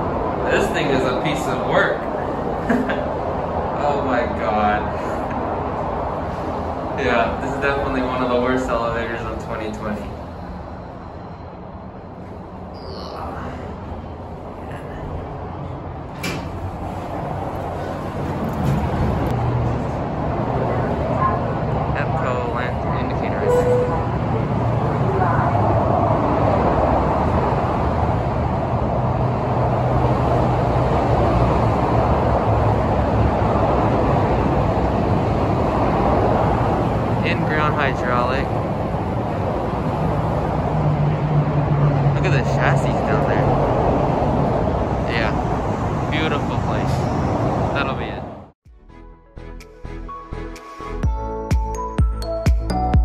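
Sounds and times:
freeway traffic noise: 0.0s - 48.6s.

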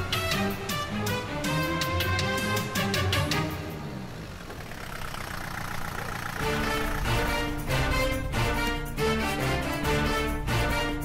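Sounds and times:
jeep engine running slowly: 0.0s - 11.0s.

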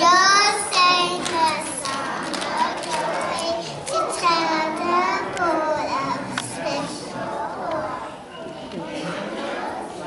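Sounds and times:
children singing: 0.0s - 8.4s
hand claps: 0.7s - 5.5s.

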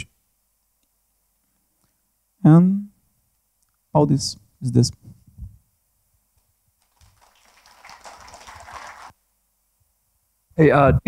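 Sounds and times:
audience applause: 6.8s - 9.2s.

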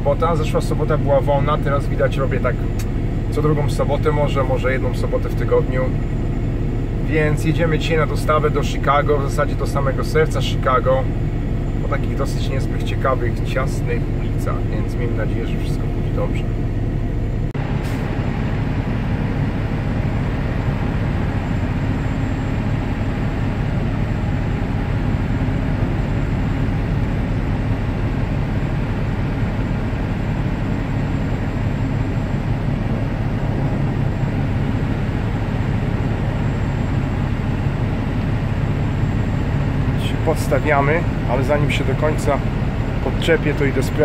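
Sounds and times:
diesel truck engine running: 0.0s - 44.0s.

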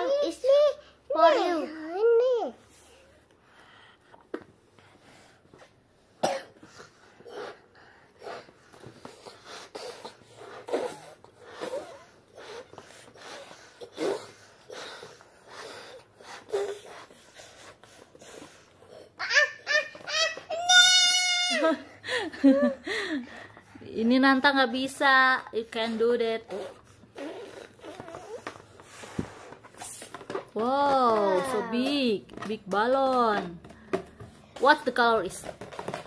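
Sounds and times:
child's voice: 0.0s - 2.6s, 19.2s - 21.7s, 30.8s - 32.0s
puffs of breath into balloon: 6.6s - 19.1s.

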